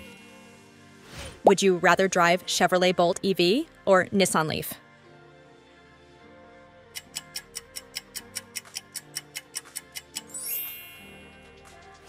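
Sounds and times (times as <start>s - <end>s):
soft background music: 0.0s - 12.0s
timer ticking: 7.0s - 10.7s.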